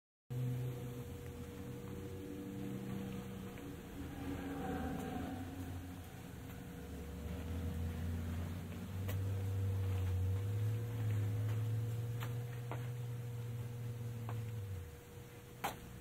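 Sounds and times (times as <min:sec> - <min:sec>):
low mechanical hum: 0:00.3 - 0:16.0.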